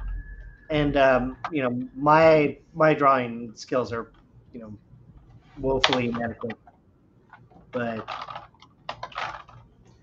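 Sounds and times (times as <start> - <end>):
computer clicking and tapping: 5.8 - 10.0.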